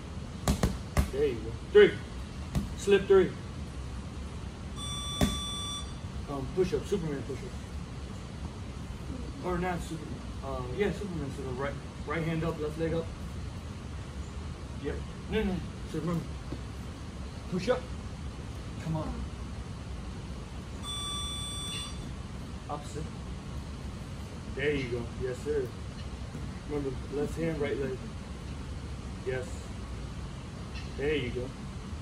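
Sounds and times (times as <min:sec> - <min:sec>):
steady low hum: 0:00.0 - 0:32.0
long electronic timer beep: 0:04.8 - 0:06.1, 0:20.8 - 0:22.2.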